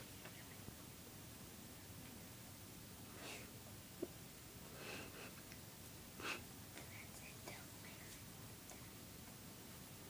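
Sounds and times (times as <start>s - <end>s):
faint whispering: 0.0s - 0.8s, 6.2s - 9.2s
low steady hiss: 0.0s - 10.0s.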